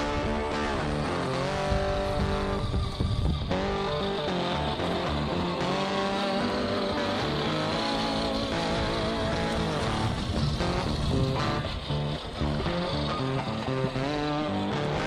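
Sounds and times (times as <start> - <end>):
car engine revving: 0.0 - 15.0
music: 0.0 - 15.0.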